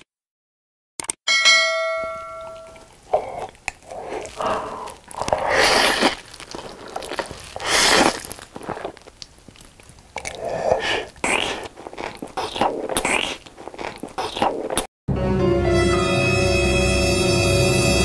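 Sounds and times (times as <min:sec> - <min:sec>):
bell chime: 0:01.3 - 0:02.9
chewing: 0:02.6 - 0:14.9
slurping noodles: 0:02.8 - 0:14.9.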